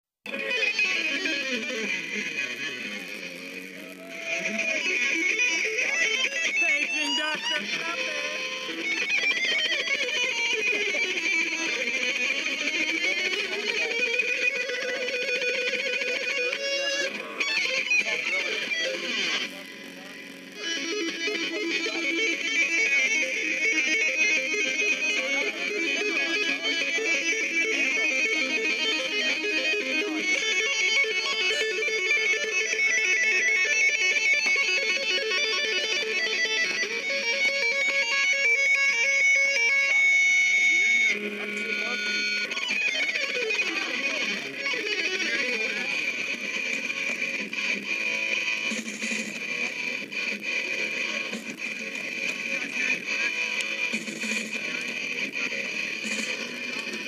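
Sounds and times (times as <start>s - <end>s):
tinny guitar song: 0.3s - 57.0s.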